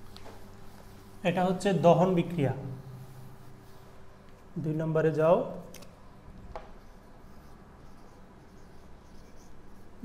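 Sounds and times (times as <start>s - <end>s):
marker pen writing on whiteboard: 6.5s - 10.0s.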